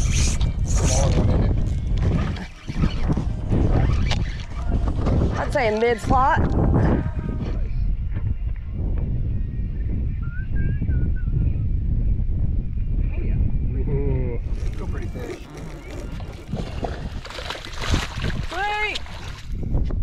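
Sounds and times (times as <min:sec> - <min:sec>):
wind rumble on microphone: 0:00.0 - 0:20.0
fish thrashing and splashing: 0:14.5 - 0:19.6.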